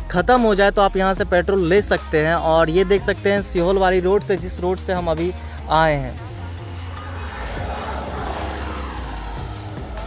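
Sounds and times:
road noise: 0:01.3 - 0:10.0
vehicle engine hum: 0:01.6 - 0:10.0.

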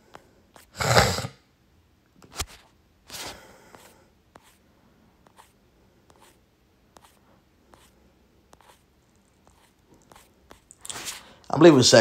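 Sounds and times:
person sneezing: 0:00.6 - 0:01.4.

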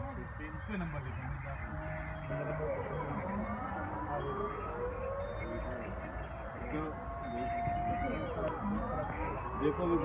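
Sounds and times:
warning siren wailing: 0:00.0 - 0:10.0.

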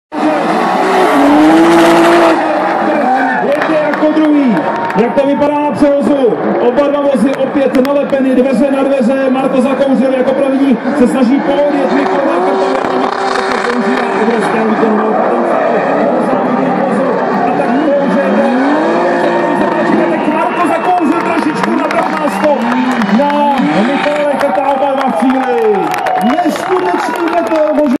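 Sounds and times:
car engines revving hard: 0:00.1 - 0:28.0.

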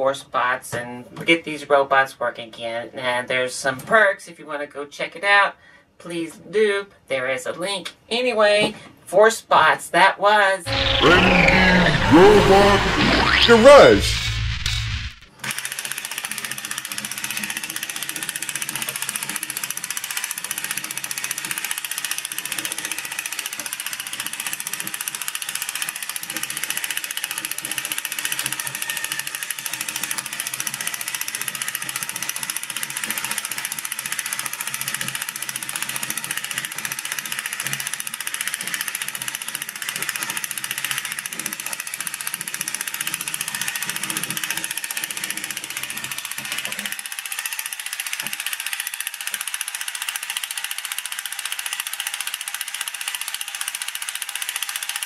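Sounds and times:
toy robot gear chatter: 0:10.7 - 0:13.4, 0:15.4 - 0:55.0.

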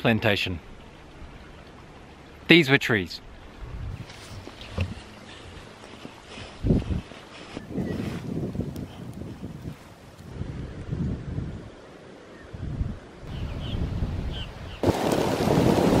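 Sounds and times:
wind buffeting microphone: 0:03.5 - 0:11.8, 0:12.5 - 0:16.0.

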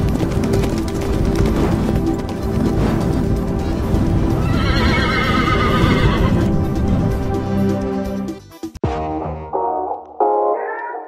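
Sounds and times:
horse hoofbeats galloping: 0:00.0 - 0:07.4
music: 0:00.0 - 0:11.0
horse whinny: 0:04.4 - 0:06.5.

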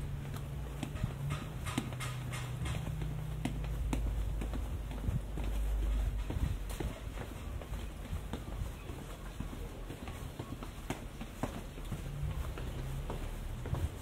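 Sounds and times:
footsteps on stone stairs: 0:00.0 - 0:14.0.

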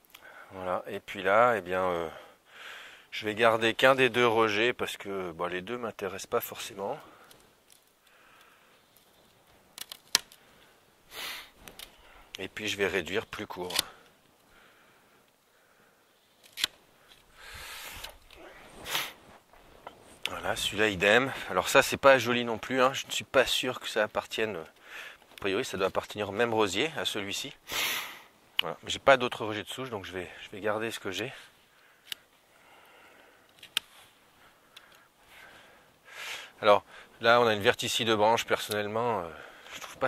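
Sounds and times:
pruning secateurs clicking: 0:13.6 - 0:14.1, 0:16.4 - 0:16.8
rustle of rose cane: 0:16.1 - 0:20.9, 0:33.5 - 0:34.7
secateurs snipping: 0:16.4 - 0:16.8.

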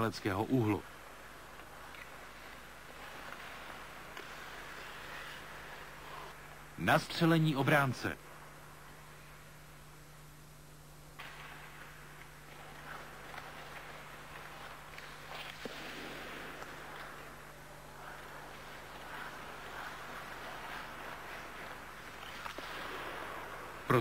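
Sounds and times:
low steady hum: 0:00.0 - 0:24.0
skates scraping on ice: 0:01.1 - 0:06.3, 0:12.5 - 0:17.4, 0:18.0 - 0:23.9.

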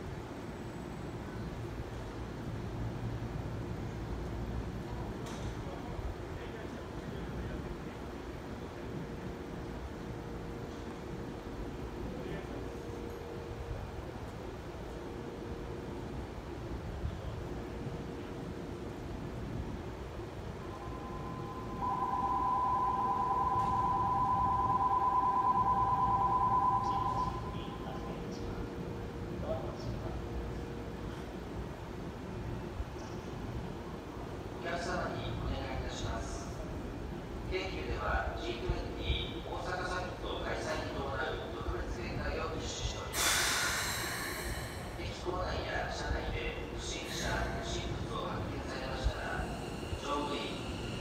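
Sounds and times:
two-tone electronic bell ringing: 0:20.6 - 0:27.9
compressed air hissing from train: 0:43.1 - 0:45.2, 0:49.3 - 0:51.0.

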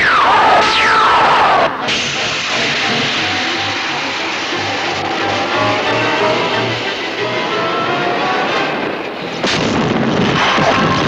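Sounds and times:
dense noise: 0:00.0 - 0:11.0
loud explosion: 0:09.4 - 0:11.0.

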